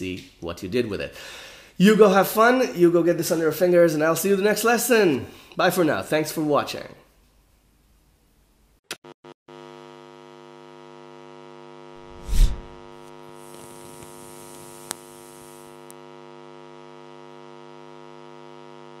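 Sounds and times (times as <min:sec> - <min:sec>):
loud deep whoosh: 0:12.1 - 0:12.7.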